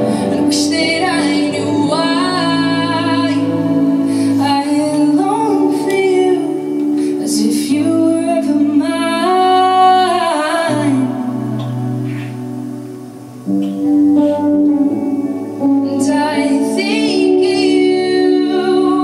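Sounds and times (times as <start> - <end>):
woman singing: 0.0 - 12.7, 14.2 - 19.0
electric guitars: 0.0 - 19.0.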